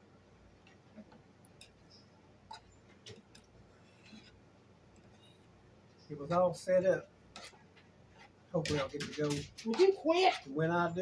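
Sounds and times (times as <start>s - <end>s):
forks clicking on plates: 8.6s - 10.5s.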